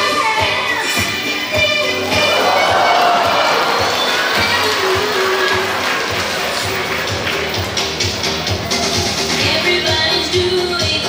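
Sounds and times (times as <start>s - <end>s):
upbeat show music: 0.0s - 11.0s
audience cheering and exclaiming: 2.0s - 7.6s.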